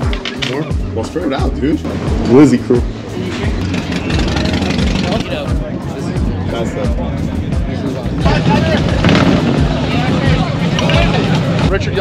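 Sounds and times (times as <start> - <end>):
crowd chatter: 0.0 - 12.0
motorcycle engines idling: 2.9 - 6.1, 7.8 - 12.0.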